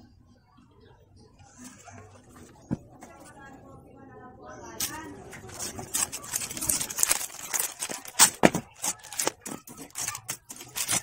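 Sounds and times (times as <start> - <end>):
plastic packaging crackling: 4.8 - 11.0.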